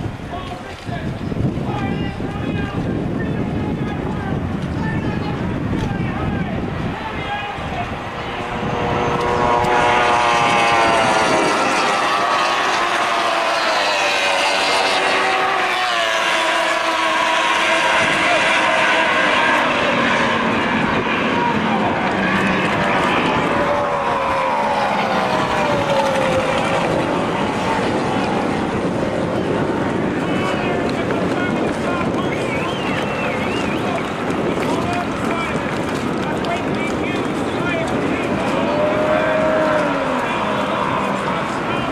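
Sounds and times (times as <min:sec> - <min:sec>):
wind noise: 0:00.0 - 0:41.9
outboard engine buzzing at high revs: 0:06.6 - 0:41.9.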